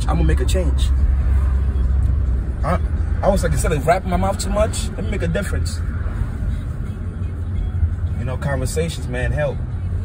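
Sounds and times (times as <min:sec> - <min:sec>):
car interior road rumble: 0:00.0 - 0:10.0.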